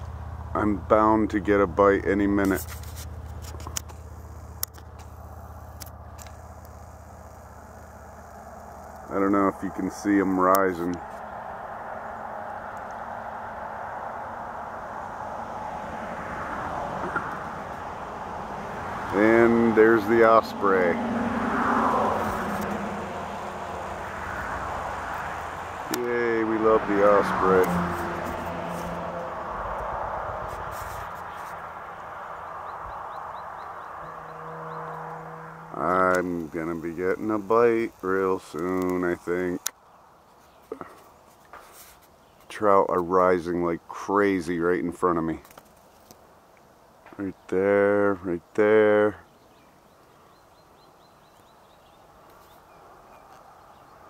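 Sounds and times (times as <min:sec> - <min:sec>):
low steady engine hum: 0:00.0 - 0:54.0
sharp clicks: 0:03.0 - 0:09.1.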